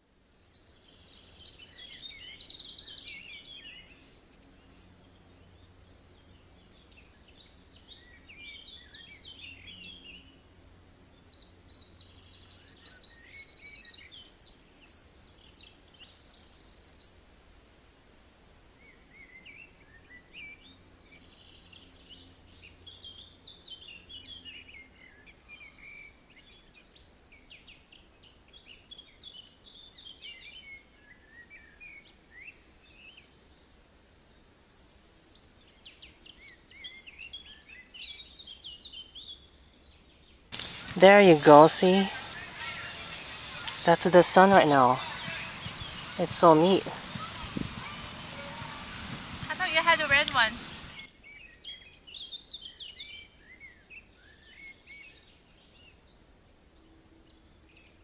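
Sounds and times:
small birds chirping and singing: 0.1s - 17.2s, 18.8s - 56.3s.

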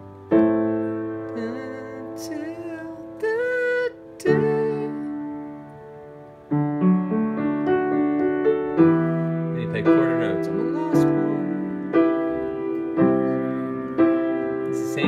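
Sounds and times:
piano playing chords: 0.0s - 15.0s.

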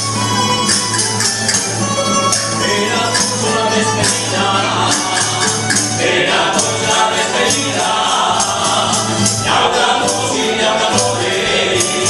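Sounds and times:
jingling percussion beat: 0.0s - 12.0s
plucked strings: 0.0s - 12.0s
voices singing together: 2.3s - 12.0s.

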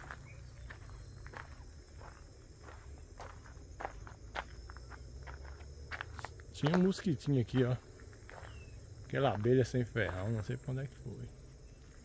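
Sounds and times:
footsteps on dry vegetation: 0.0s - 10.7s.

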